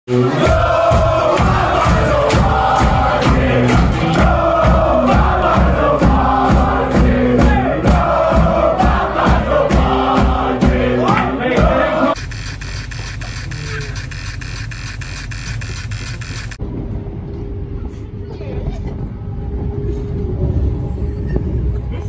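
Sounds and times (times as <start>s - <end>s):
crowd singing and chanting: 0.1s - 12.2s.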